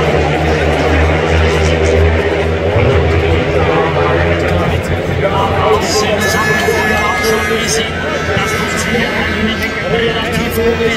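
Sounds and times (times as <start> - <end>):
racing motorcycles droning: 0.0 - 10.9.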